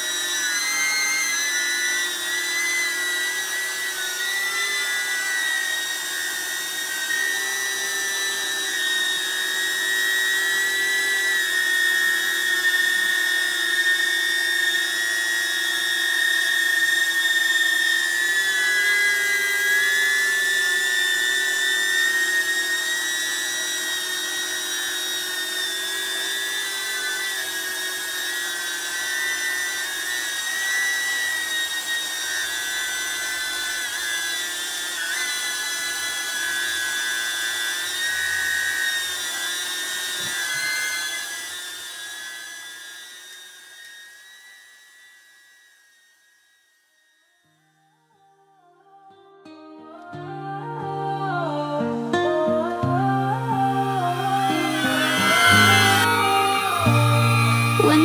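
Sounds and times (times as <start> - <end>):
drone propeller whine: 51.6 - 58.0.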